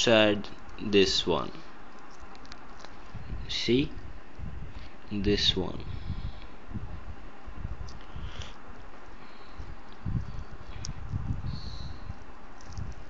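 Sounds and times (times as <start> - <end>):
camera handling rumble: 1.8 - 3.4, 7.7 - 13.0.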